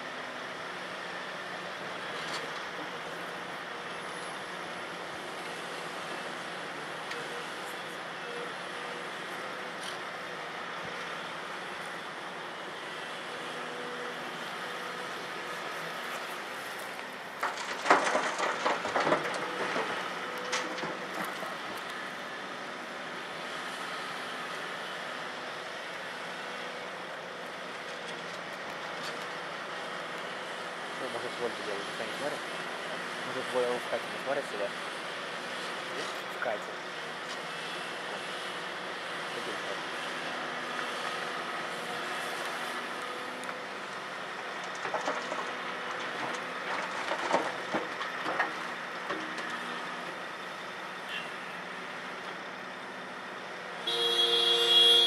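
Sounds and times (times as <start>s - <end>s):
distant diesel engines running: 0.0s - 55.0s
rocks clattering into truck bed: 17.4s - 21.4s.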